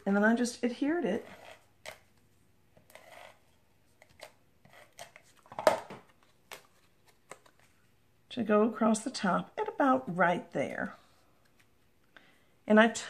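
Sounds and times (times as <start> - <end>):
paper rustling and tapping: 5.0 - 7.7.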